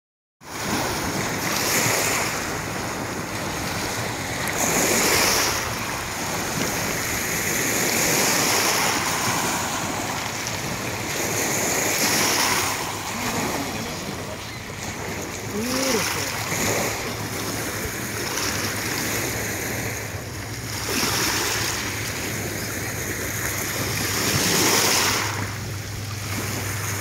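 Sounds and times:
lake waves lapping on pebbles: 0.5 - 27.0.

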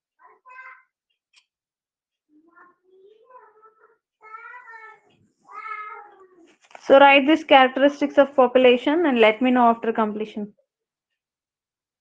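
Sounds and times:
teacher speaking: 0.2 - 1.0, 2.3 - 10.0.

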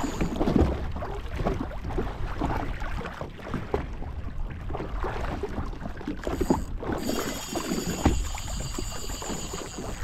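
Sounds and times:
water slapping against hull: 0.0 - 10.0.

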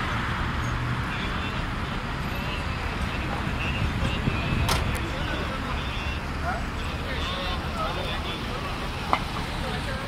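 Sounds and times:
low rumble of road vehicles: 0.0 - 10.0.

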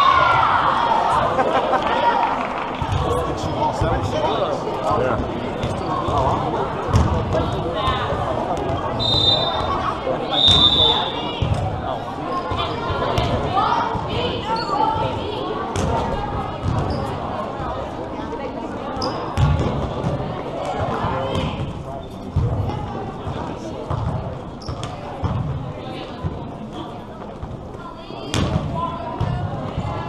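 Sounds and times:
overlapping voices: 0.8 - 3.8
volleyballs thudding and bouncing: 5.2 - 8.9, 11.4 - 14.3, 15.7 - 17.0, 19.4 - 30.0.

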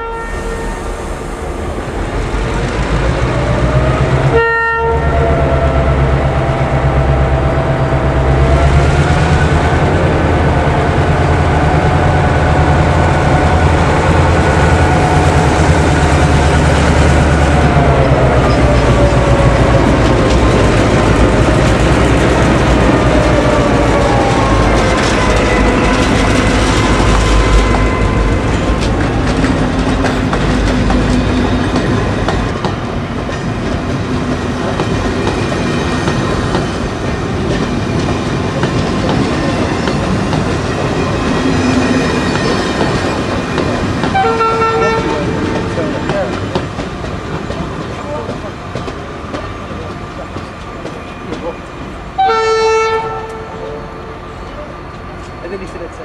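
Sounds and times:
diesel locomotives passing: 0.0 - 56.0
train wheels clickety-clack: 8.4 - 52.0.

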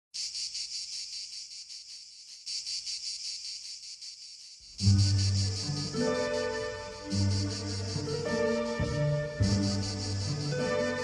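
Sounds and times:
cicadas buzzing: 0.1 - 11.0.

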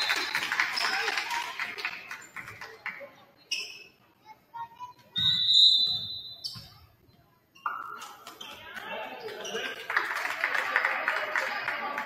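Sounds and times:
voices in a gym: 0.0 - 12.0
referee's whistle blast: 5.2 - 6.6.

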